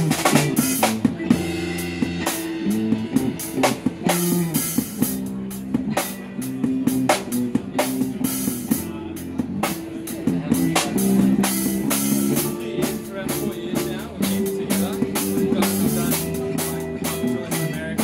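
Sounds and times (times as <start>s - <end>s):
drum kit beat: 0.0s - 18.0s.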